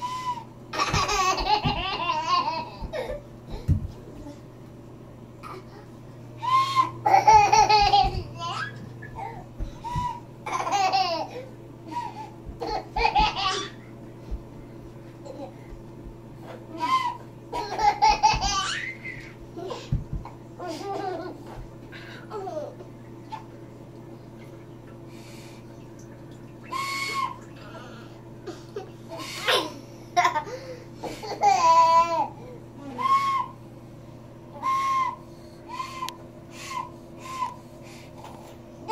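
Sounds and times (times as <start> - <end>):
breathy flute notes: 0.0 - 0.6, 6.3 - 7.1, 11.8 - 12.4, 16.4 - 17.4, 26.6 - 28.3, 32.8 - 33.7, 34.6 - 38.1
toddler giggling: 0.8 - 4.4, 7.0 - 11.5, 12.6 - 13.9, 16.7 - 21.6, 28.5 - 32.3.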